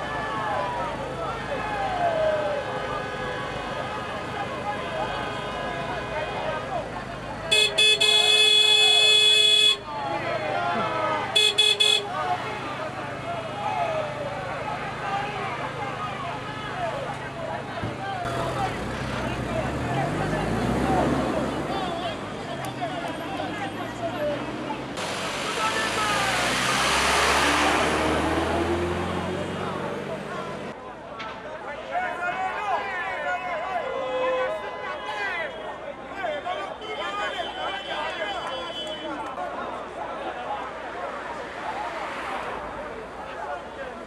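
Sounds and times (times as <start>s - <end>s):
crowd voices: 0.0s - 44.0s
vehicle horn honking: 7.5s - 9.9s, 11.3s - 12.2s, 36.7s - 39.2s
background voices: 14.2s - 30.8s
vehicle passing close by: 18.3s - 30.7s.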